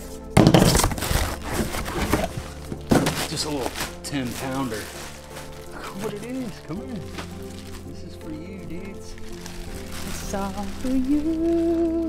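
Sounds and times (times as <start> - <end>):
background music: 0.0 - 12.0
plastic crinkling: 0.4 - 12.0.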